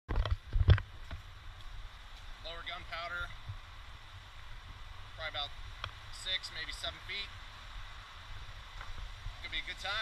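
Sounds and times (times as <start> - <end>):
faint hiss: 0.9 - 10.0
man speaking: 2.4 - 3.3, 6.1 - 7.3, 9.4 - 10.0.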